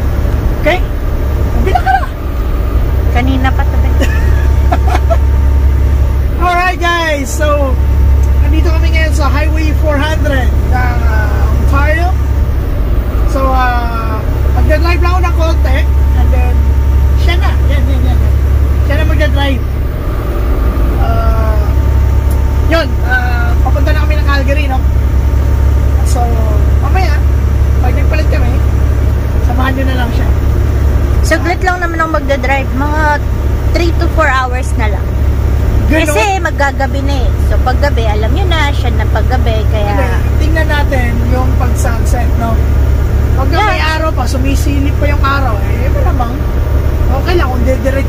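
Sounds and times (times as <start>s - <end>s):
road noise: 0.0s - 48.0s
truck engine drone: 0.0s - 48.0s
people talking: 0.6s - 2.2s, 3.0s - 12.3s, 13.2s - 19.8s, 21.0s - 25.0s, 25.9s - 30.6s, 31.2s - 35.2s, 35.8s - 48.0s
man talking: 6.4s - 12.2s, 13.2s - 19.7s, 21.0s - 25.0s, 39.8s - 42.7s.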